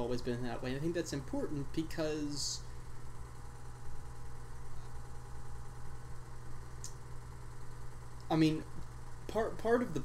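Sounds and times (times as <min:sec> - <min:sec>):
steady low hum: 0:00.0 - 0:10.0
faint high tick: 0:06.8 - 0:07.0.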